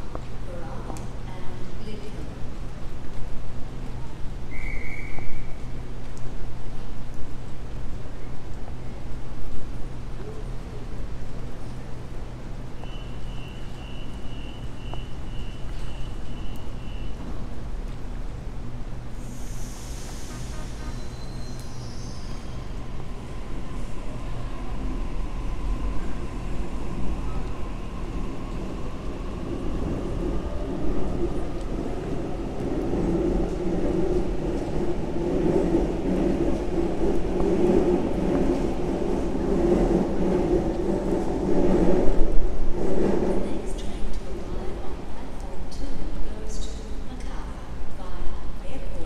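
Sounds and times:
train rumbling: 0.0 - 49.0.

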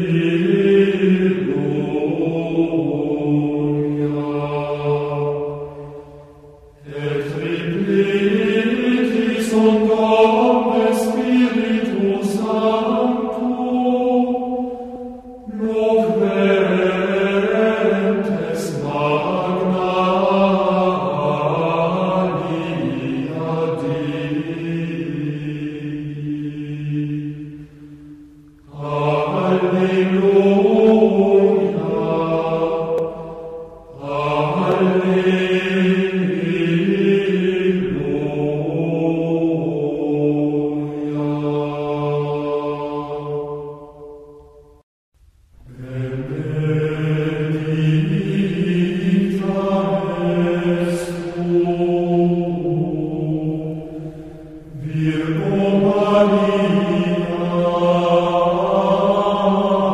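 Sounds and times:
men chanting: 15.5 - 27.2, 45.8 - 59.9.

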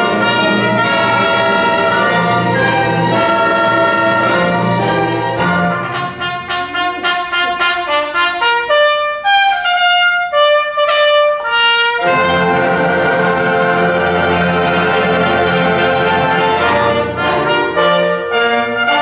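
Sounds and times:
trumpet and brass short notes: 0.0 - 13.0, 16.5 - 19.0
symphony orchestra playing: 0.0 - 19.0.

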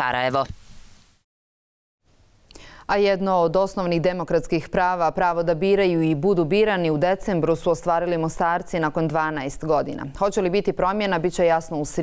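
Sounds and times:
woman speaking: 2.9 - 12.0.

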